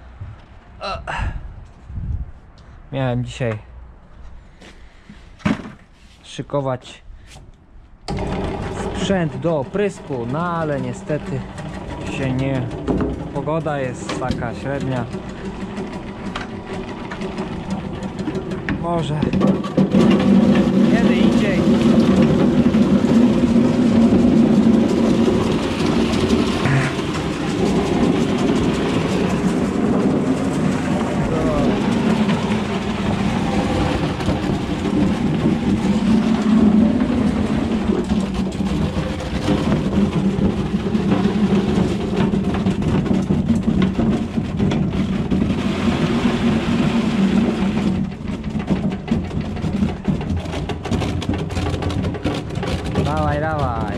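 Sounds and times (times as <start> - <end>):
electric vegetable chopper running: 8.1 - 53.9.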